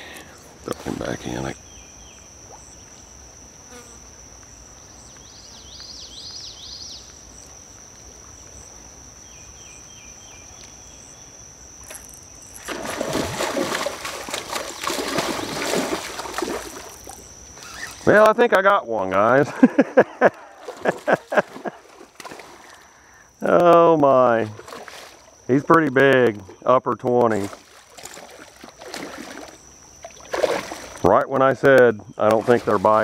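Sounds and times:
high-pitched insect buzz: 0:00.0 - 0:33.0.

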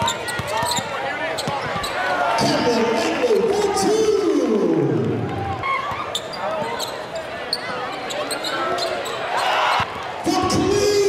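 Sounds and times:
sneakers squeaking: 0:00.0 - 0:02.1, 0:05.7 - 0:09.9
crowd voices: 0:00.0 - 0:11.0.

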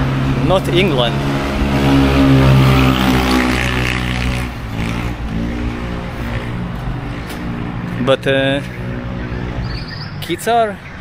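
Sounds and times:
vehicle engine passing: 0:00.0 - 0:10.9.

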